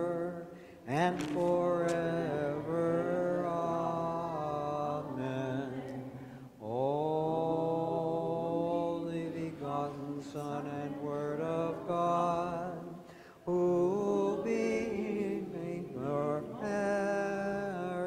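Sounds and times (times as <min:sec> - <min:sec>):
man chanting a hymn: 0:00.0 - 0:05.9, 0:06.6 - 0:18.0.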